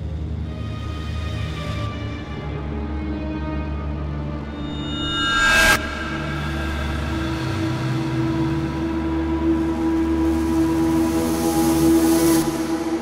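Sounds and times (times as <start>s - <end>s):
droning tone: 3.8s - 13.0s.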